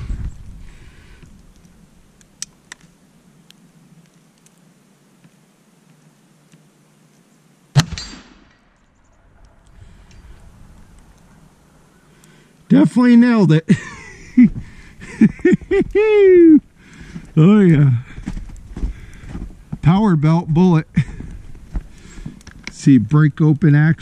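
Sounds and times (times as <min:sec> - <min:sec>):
faint clicks: 0:01.2 - 0:04.6, 0:09.1 - 0:12.7, 0:21.2 - 0:22.8
loud gunshot: 0:07.7 - 0:08.6
bullet ringing on steel target: 0:07.8 - 0:08.4.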